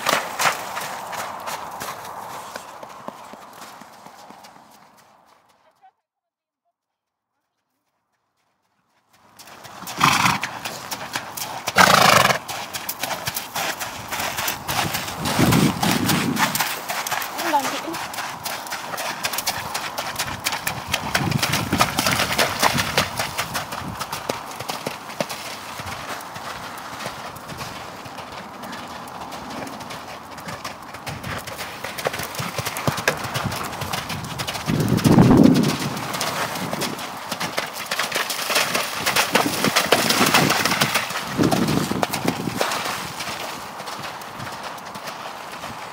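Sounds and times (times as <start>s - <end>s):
horse hoofbeats on wet sand: 0.0s - 5.9s, 7.4s - 45.9s.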